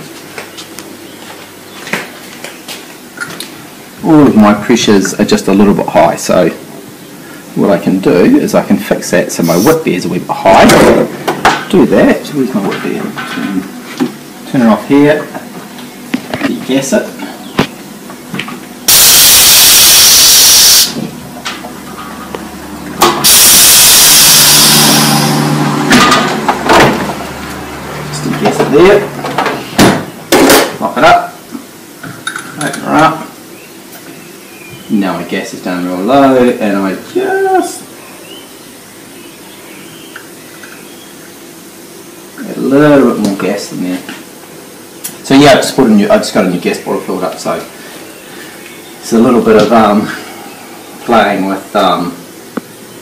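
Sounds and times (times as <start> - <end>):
faint hiss: 8.9 - 10.1
gas hissing from a valve: 9.4 - 9.9, 18.9 - 21.0, 23.2 - 25.6.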